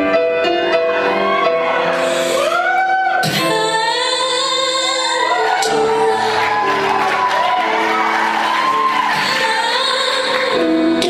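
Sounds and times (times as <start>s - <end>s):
piano notes: 0.0s - 11.0s
woman singing slow song: 3.2s - 6.8s, 9.1s - 11.0s.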